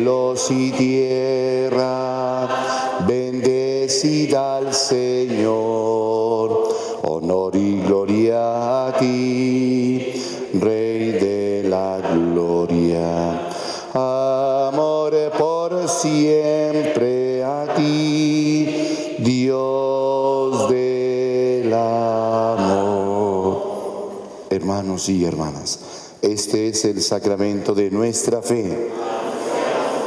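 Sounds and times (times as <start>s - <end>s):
man singing a hymn: 0.0s - 28.8s
man breathing: 6.6s - 7.0s, 10.1s - 10.5s, 13.4s - 14.0s, 18.7s - 19.2s, 25.8s - 26.2s.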